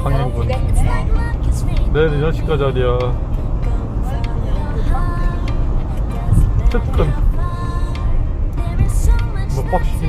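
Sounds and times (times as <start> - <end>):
car driving rumble from cabin: 0.0 - 10.0
faint music: 0.0 - 10.0.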